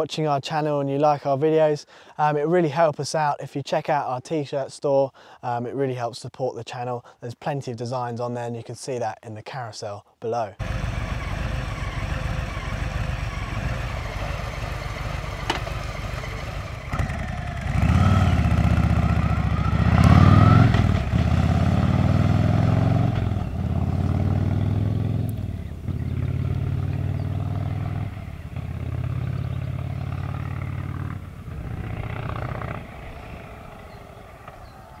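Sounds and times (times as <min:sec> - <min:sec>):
motorcycle engine accelerating: 0:10.6 - 0:35.0.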